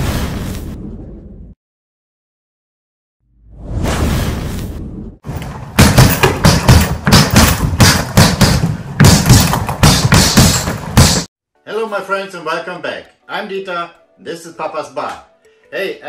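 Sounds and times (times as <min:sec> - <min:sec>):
gloves punching heavy bag: 0:05.5 - 0:11.3
music: 0:11.5 - 0:16.0.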